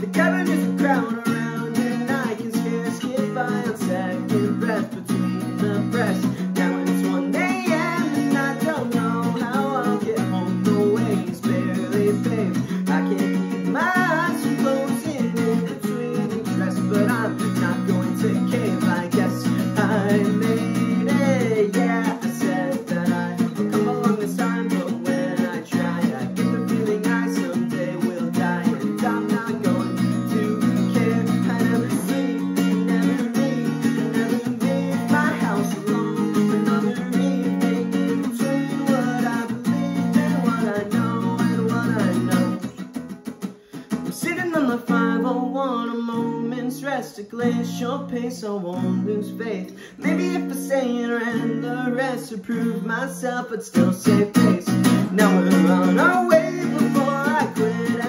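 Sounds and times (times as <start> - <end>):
acoustic guitar strumming: 0.0 - 58.0
young man singing: 0.0 - 58.0.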